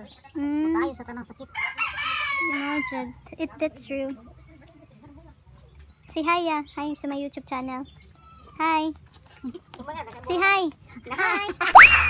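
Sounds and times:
rooster crowing: 1.6 - 3.1.

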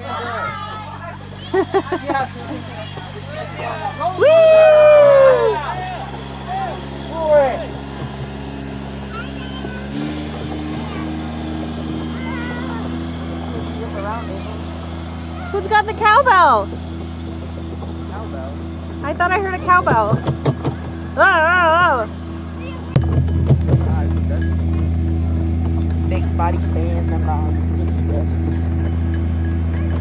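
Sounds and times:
tractor engine running: 0.0 - 30.0
voices: 0.0 - 30.0.

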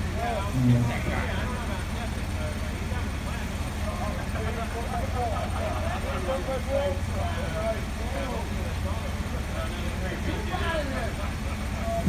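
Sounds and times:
crew voices talking: 0.0 - 12.0
forklift engine humming: 0.0 - 12.0.

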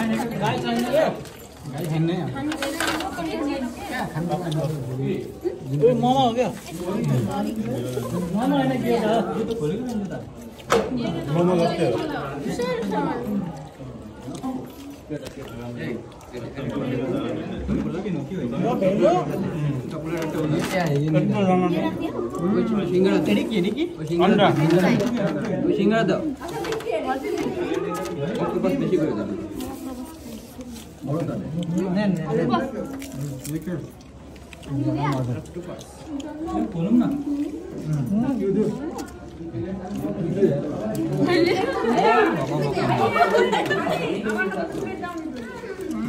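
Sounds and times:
crowd chatter: 0.0 - 46.0
overlapping conversation: 0.0 - 46.0.

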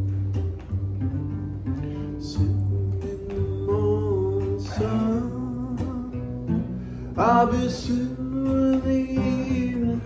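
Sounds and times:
acoustic guitar strumming: 0.0 - 10.0.

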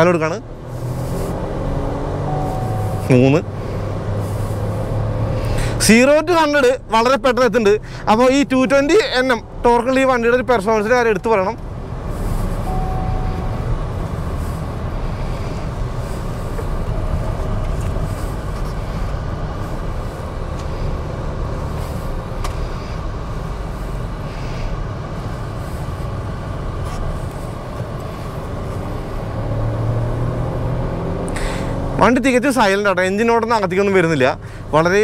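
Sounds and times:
car engine in cabin: 0.0 - 35.0
road rumble: 0.0 - 35.0.

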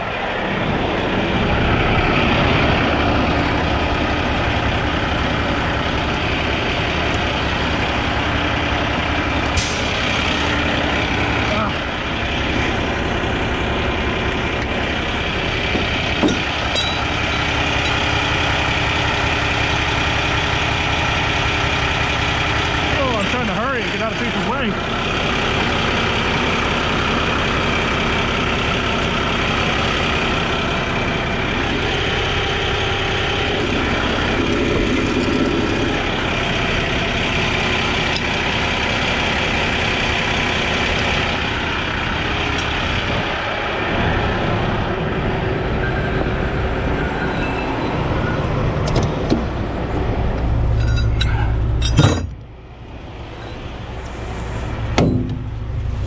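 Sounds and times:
diesel truck engine idling: 0.0 - 56.0.

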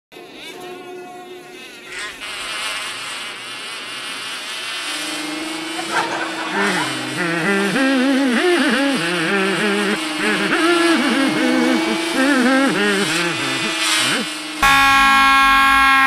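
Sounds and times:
steady fluttering buzz: 0.2 - 16.0
loud distorted blare: 1.5 - 16.0
warbling pitched sound: 5.2 - 15.2.

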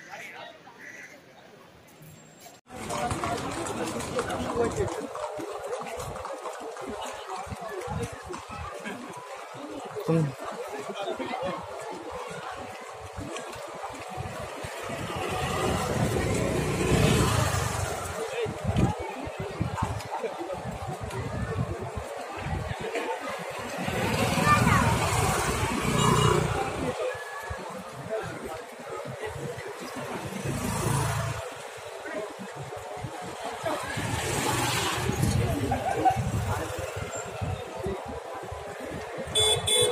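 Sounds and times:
motor vehicle passing: 14.4 - 18.6, 29.8 - 37.8.

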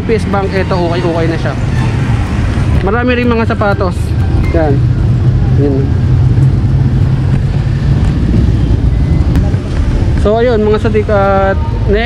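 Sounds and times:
street traffic rumble: 0.0 - 12.0
vehicle engine running: 0.0 - 12.0.

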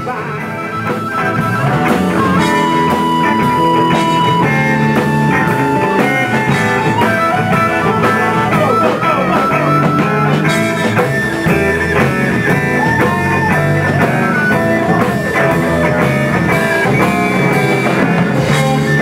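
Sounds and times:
electric guitar: 0.0 - 19.0
harmonica bending notes: 0.0 - 19.0
steady drum beat: 0.0 - 19.0.

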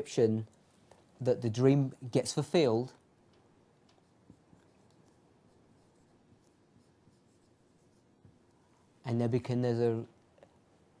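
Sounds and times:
marker pen writing on whiteboard: 3.7 - 9.0.

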